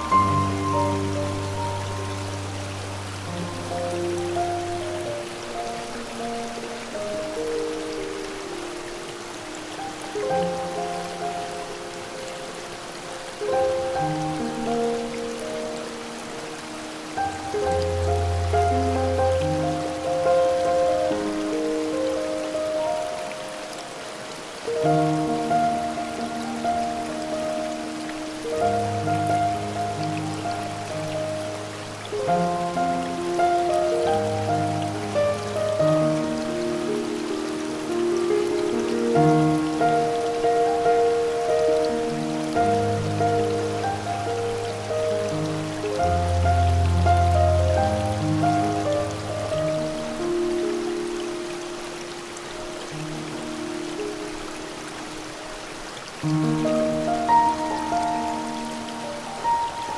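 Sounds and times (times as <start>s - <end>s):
slow solo piano music: 0.0s - 59.9s
waterfall rushing water: 0.0s - 59.9s.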